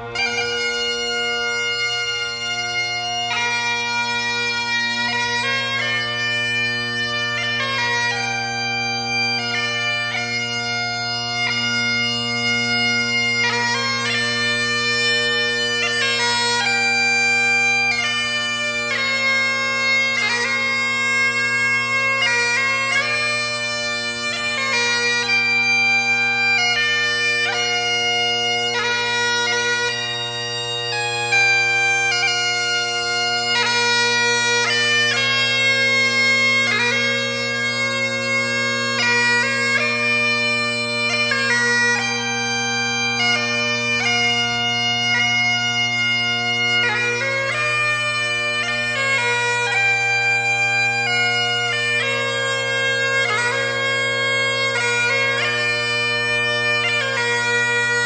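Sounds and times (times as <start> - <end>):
bagpipe chanter melody: 0.0 - 58.0
bagpipe drones: 0.0 - 58.0.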